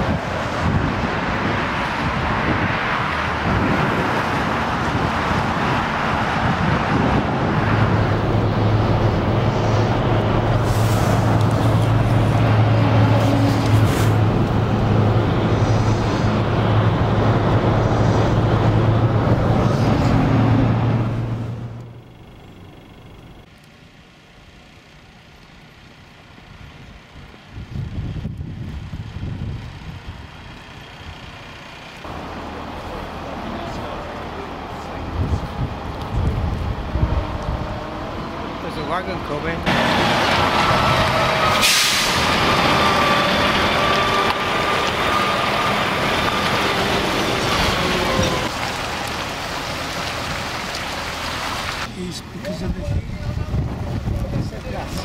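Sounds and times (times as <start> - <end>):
car interior road noise: 0.0 - 41.6
motorway traffic: 0.0 - 55.0.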